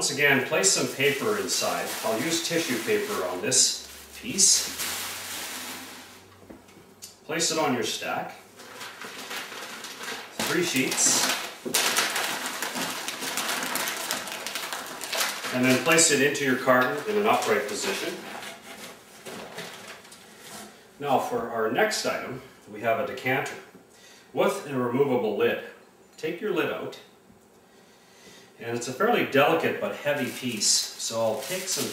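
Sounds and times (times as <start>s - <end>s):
tissue paper rustling: 0.0s - 6.3s, 8.5s - 20.7s, 30.0s - 31.9s.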